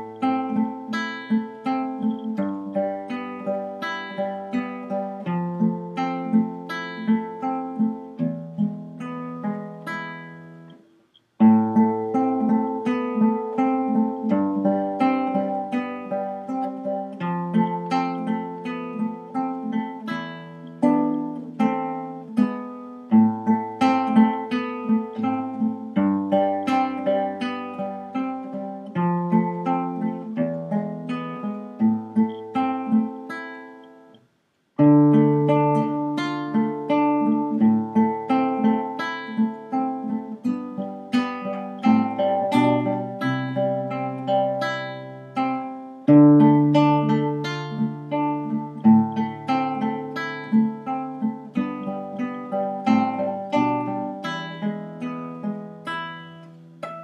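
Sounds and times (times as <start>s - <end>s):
nylon-string guitar fingerpicking: 0.0s - 57.0s.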